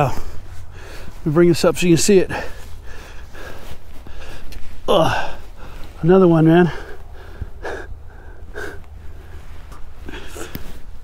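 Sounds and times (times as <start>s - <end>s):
man breathing out: 6.7s - 10.9s.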